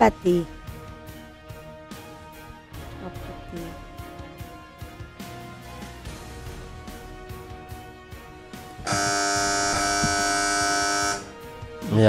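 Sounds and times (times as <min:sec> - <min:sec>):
harsh electronic buzzer: 0:08.8 - 0:11.5.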